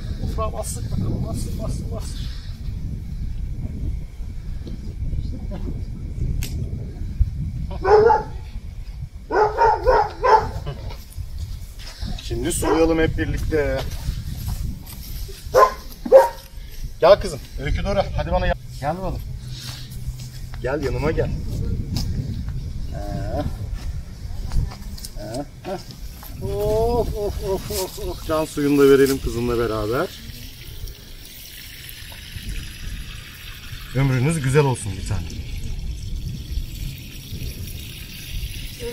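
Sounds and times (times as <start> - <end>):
dog barking: 7.8 - 8.4, 9.3 - 10.8, 12.6 - 12.9, 15.5 - 16.4
steady low rumble: 16.6 - 28.6
water sprinkling onto soil: 24.5 - 38.9.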